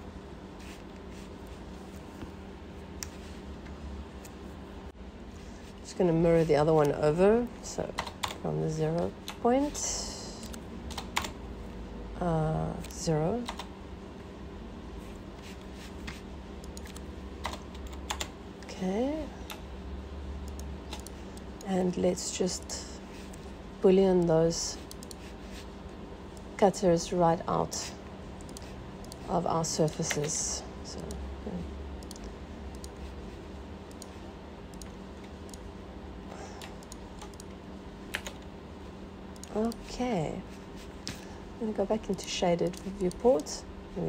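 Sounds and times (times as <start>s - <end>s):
low steady hum: 0.0s - 44.0s
keyboard typing: 7.9s - 8.4s, 10.4s - 11.4s, 12.8s - 13.7s, 16.0s - 18.3s, 20.4s - 21.8s, 32.0s - 33.1s, 36.6s - 38.5s.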